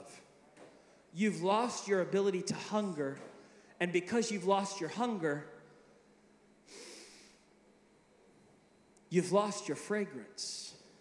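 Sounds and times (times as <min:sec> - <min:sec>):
man breathing in: 0:03.4 - 0:03.8, 0:06.7 - 0:07.5.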